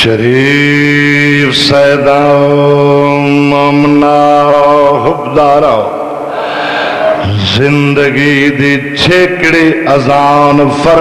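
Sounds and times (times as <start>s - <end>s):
man chanting into a microphone: 0.0s - 6.1s, 7.1s - 11.0s.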